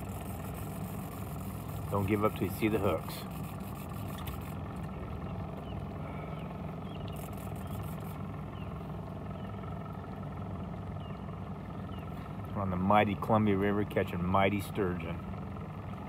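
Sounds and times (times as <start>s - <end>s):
boat motor idling: 0.0s - 16.0s.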